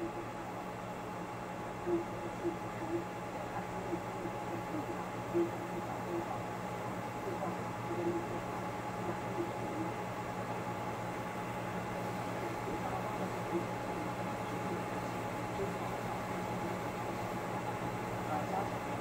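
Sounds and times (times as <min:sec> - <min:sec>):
equipment hum and hiss: 0:00.0 - 0:19.0
low hum tones: 0:00.0 - 0:19.0.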